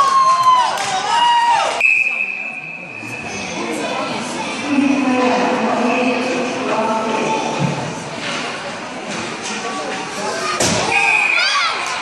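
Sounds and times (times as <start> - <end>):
murmur of onlookers: 1.8 - 11.4.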